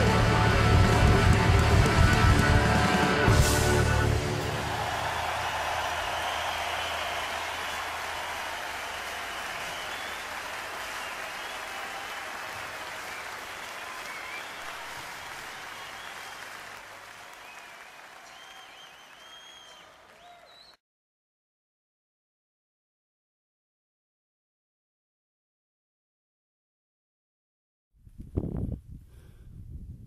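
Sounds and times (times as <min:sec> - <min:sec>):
audience applause: 0:00.0 - 0:20.8.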